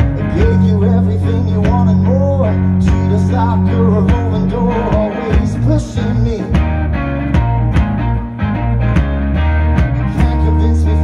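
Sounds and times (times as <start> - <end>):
bass guitar: 0.0 - 11.0
electric guitar: 0.0 - 11.0
drums playing steady beat: 2.8 - 8.3, 8.9 - 10.6.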